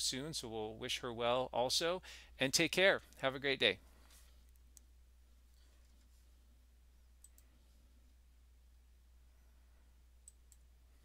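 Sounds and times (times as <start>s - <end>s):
low steady hum: 0.0s - 11.0s
computer mouse clicks: 7.2s - 7.5s, 10.2s - 10.7s.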